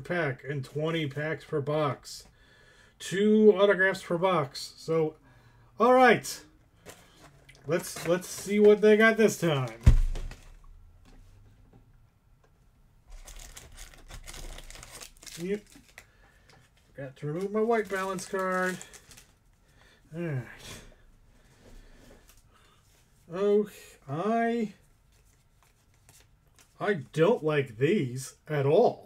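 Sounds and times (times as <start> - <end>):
man talking: 0.0 - 2.3, 3.0 - 5.2, 5.8 - 6.5, 7.6 - 9.9, 15.3 - 15.8, 16.9 - 18.9, 20.1 - 20.8, 23.3 - 24.8, 26.8 - 29.0
trading cards rustling and clicking: 6.8 - 10.6, 13.1 - 19.4
plastic wrapping crinkling: 13.1 - 19.6.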